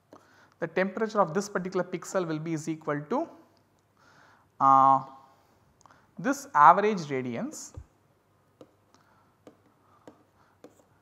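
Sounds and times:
stylus scratching on pen tablet: 9.4s - 11.0s.

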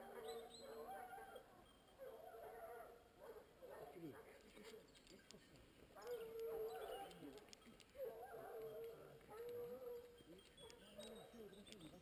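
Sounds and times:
hounds baying faintly: 0.0s - 12.0s.

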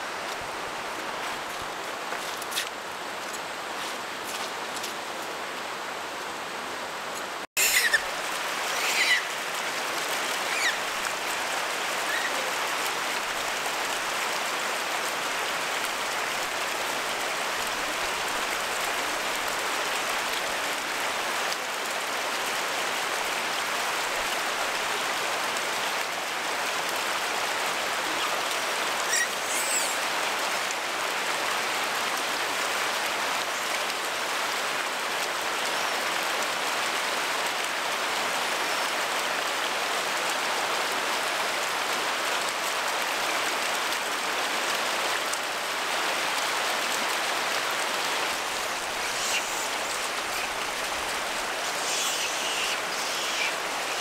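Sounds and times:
running water rushing: 0.0s - 54.0s
brief high squeak: 7.6s - 8.0s.

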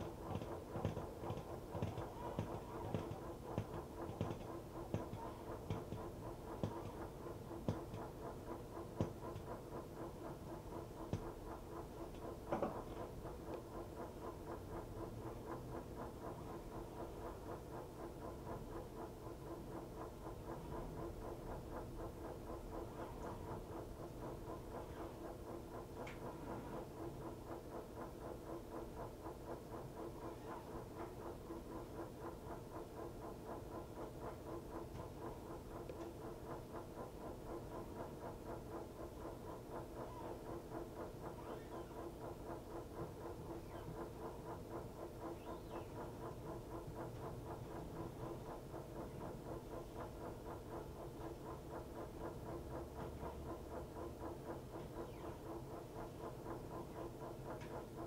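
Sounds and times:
washing machine running: 0.0s - 58.0s.

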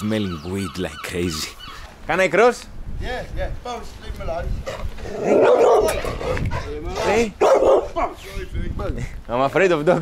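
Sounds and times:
dog barking: 5.2s - 6.7s, 7.4s - 8.2s.

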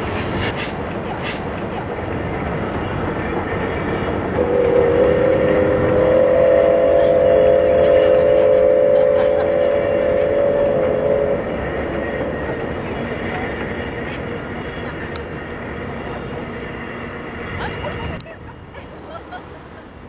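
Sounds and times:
steam train rumbling over bridge: 0.0s - 20.0s
steam locomotive whistle: 3.7s - 16.0s.

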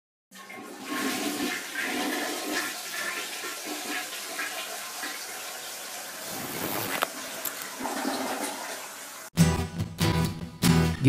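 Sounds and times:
toilet flushing: 0.3s - 9.4s.

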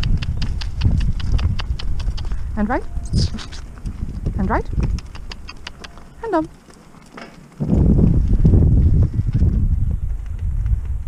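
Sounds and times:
low wind rumble on microphone: 0.0s - 11.0s.

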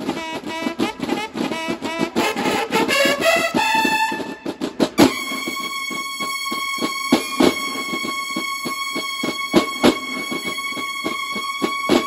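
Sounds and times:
snare drums steady beat: 0.0s - 12.0s
bugles holding high note: 0.4s - 11.9s.

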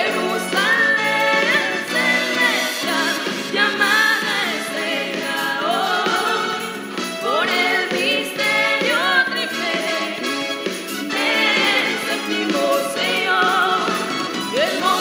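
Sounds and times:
choir singing a hymn: 0.0s - 10.4s, 11.0s - 15.0s.

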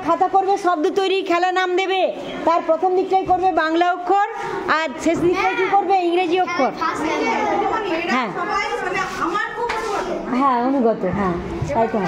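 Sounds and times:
children talking and calling out: 1.9s - 10.6s.

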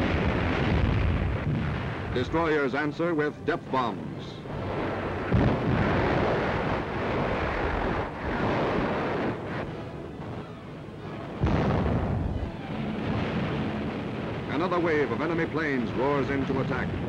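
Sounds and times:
depth charge explosions: 0.0s - 2.4s, 4.6s - 9.7s, 11.4s - 17.0s.

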